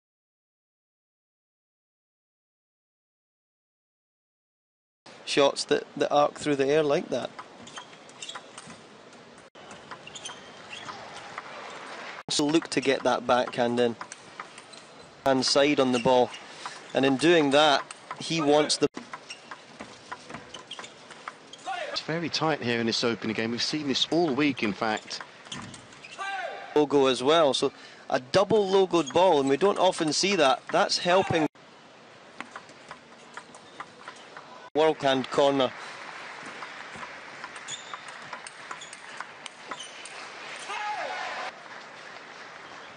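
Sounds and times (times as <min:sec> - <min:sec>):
faint arena noise hiss: 0:05.1 - 0:42.9
shoes squeaking on floor: 0:07.6 - 0:08.8, 0:09.6 - 0:11.9, 0:14.4 - 0:22.0, 0:24.3 - 0:26.4, 0:28.7 - 0:31.5, 0:33.0 - 0:34.6, 0:36.5 - 0:40.7
table tennis ball clicking: 0:36.5 - 0:40.2.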